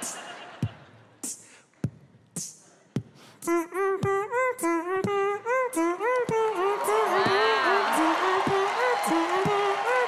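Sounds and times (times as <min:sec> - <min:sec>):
beatboxed drum beat: 0:00.0 - 0:10.0.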